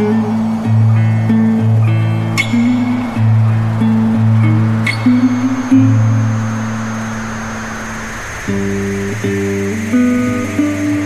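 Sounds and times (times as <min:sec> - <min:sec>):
guitar chord ringing: 0:00.0 - 0:11.0
high-pitched whine and hiss: 0:00.0 - 0:11.0.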